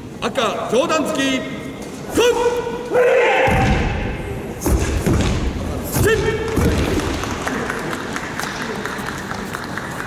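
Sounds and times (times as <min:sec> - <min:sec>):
man shouting calls: 0:02.1 - 0:03.6.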